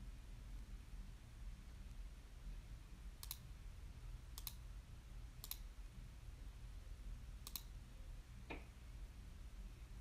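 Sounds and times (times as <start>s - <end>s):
low steady hum: 0.0s - 10.0s
sharp double clicks: 7.4s - 7.7s.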